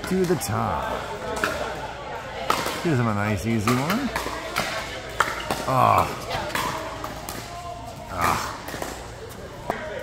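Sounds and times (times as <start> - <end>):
paddles striking plastic balls: 3.6 - 7.6.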